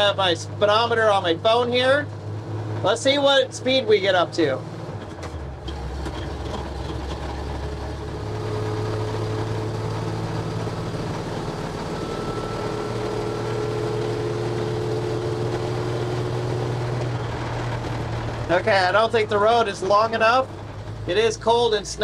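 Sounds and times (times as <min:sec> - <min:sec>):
truck engine accelerating: 0:00.0 - 0:22.0.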